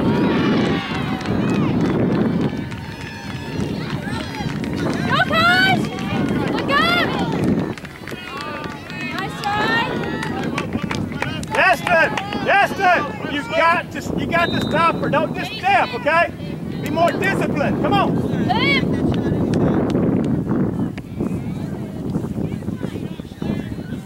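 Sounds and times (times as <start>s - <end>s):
voices shouting: 0.0s - 18.9s.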